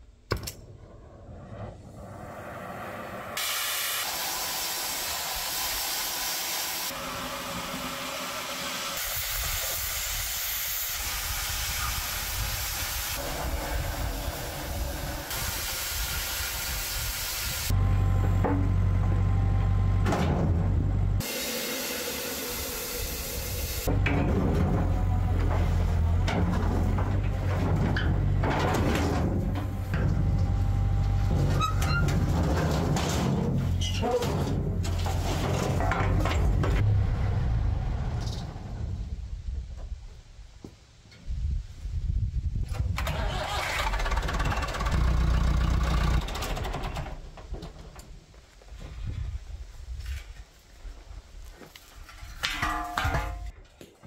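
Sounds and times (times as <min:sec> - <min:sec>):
cutting torch hissing: 0:02.0 - 0:17.8, 0:21.2 - 0:23.9
excavator engine rumbling: 0:17.7 - 0:39.7, 0:42.9 - 0:48.0.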